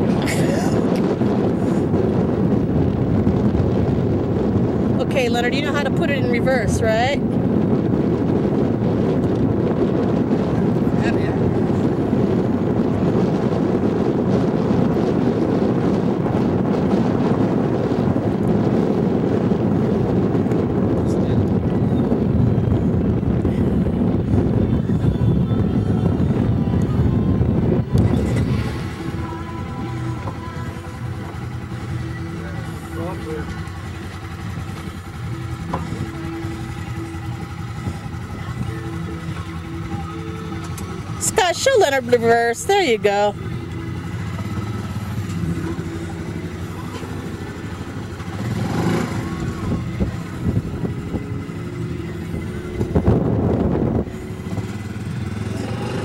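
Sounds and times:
atv engine idling: 0:00.0 - 0:56.0
wind buffeting microphone: 0:00.0 - 0:56.0.

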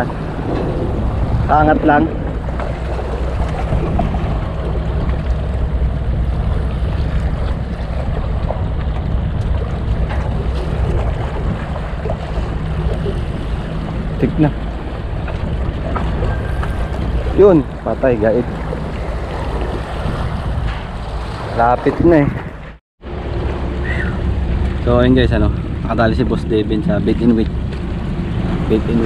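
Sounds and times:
steady low hum: 0:00.0 - 0:21.6
waves washing against rocks: 0:00.0 - 0:22.6
wind buffeting microphone: 0:00.0 - 0:29.0.

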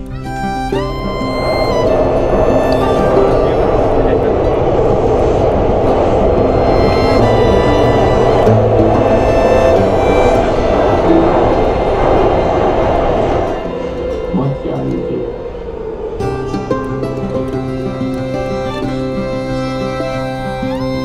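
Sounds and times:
background music: 0:00.0 - 0:05.4, 0:06.0 - 0:21.0
metro train rumbling: 0:00.0 - 0:21.0.

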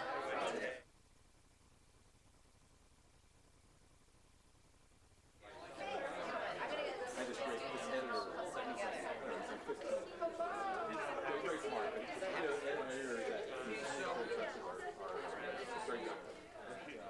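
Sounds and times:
audience chatter: 0:00.0 - 0:00.8, 0:05.4 - 0:17.0.

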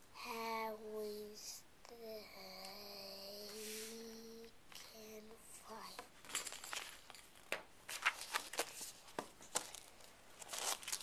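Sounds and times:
boy humming: 0:01.2 - 0:06.0.

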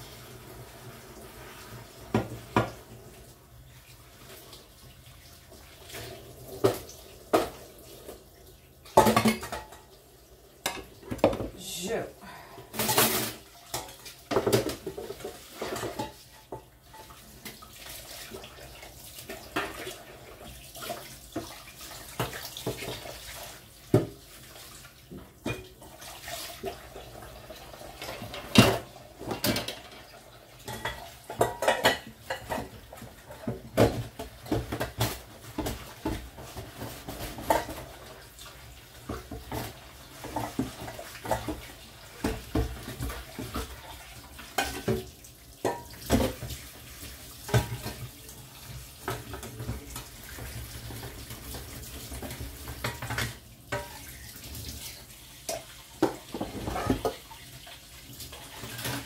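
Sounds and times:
water running from tap: 0:00.0 - 0:59.0.

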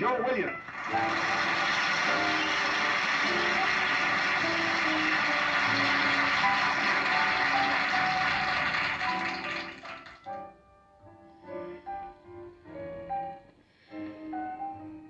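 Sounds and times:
audience applauding: 0:00.6 - 0:10.4
band playing: 0:00.7 - 0:09.8.

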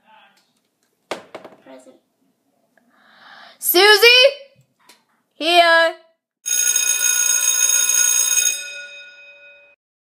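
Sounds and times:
electric bell ringing: 0:06.5 - 0:09.8.

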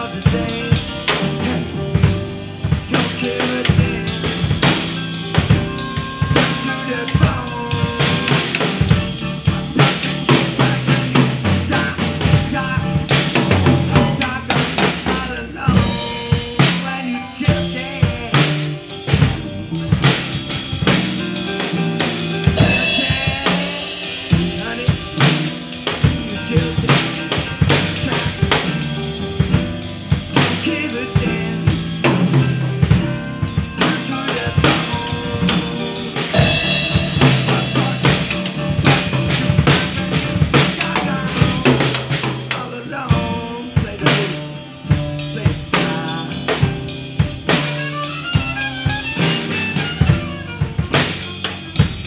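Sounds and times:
drum kit playing steady beat: 0:00.0 - 0:52.0
recorded rock song: 0:00.0 - 0:52.0.

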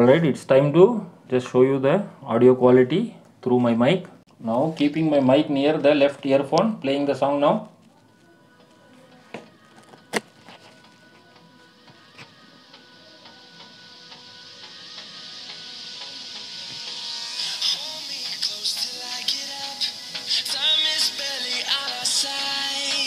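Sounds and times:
song playing through earbud: 0:04.8 - 0:23.0.

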